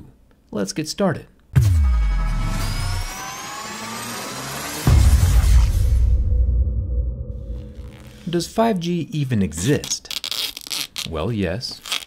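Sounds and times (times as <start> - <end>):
deep bass hit: 1.6 - 3.2, 4.8 - 8.6
rising tones riser: 1.6 - 8.4
noisy whoosh: 1.6 - 8.7.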